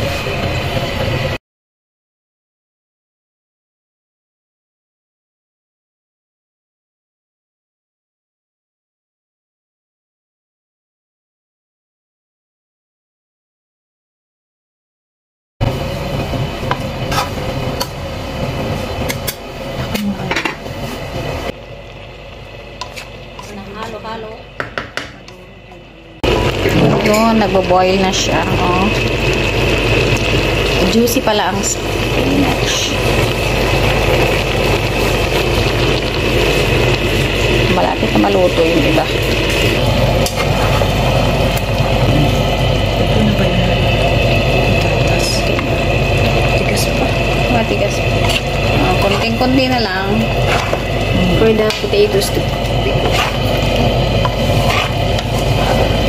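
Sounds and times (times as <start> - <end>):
low hum with hiss: 15.6 - 56.0
spatula knocking against pan: 24.6 - 25.2
wooden spatula stirring in pan: 51.6 - 55.9.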